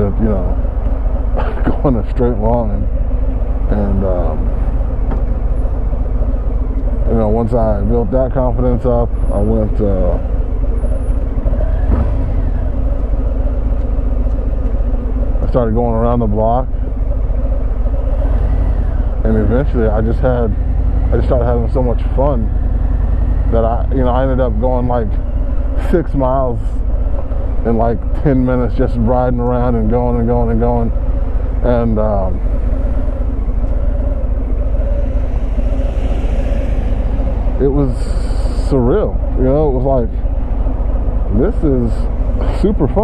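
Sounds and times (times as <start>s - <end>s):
motorcycle engine rumbling: 0.0s - 43.0s
road traffic passing: 0.0s - 43.0s.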